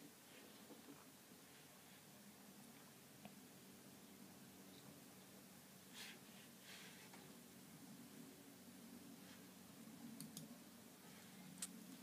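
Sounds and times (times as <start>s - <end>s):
faint mouse clicks: 10.2s - 10.5s.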